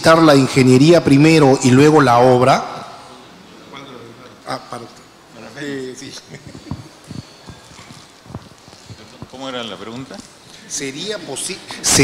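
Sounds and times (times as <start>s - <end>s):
microphone handling knocks: 6.4s - 9.4s.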